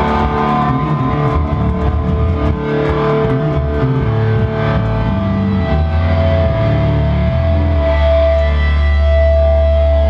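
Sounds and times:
distorted electric guitar and bass: 0:00.0 - 0:10.0.

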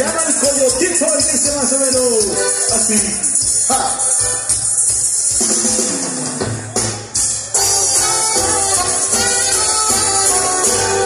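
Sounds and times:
drum kit: 0:00.0 - 0:11.0
live band playing: 0:00.0 - 0:11.0.

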